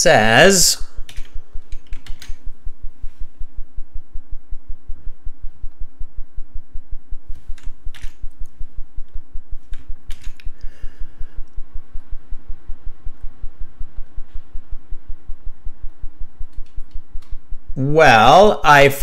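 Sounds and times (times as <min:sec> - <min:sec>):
fast low pulsing: 0:00.0 - 0:19.0
keyboard and mouse clicks: 0:01.1 - 0:02.4, 0:07.5 - 0:08.4, 0:09.6 - 0:10.6, 0:16.5 - 0:17.4.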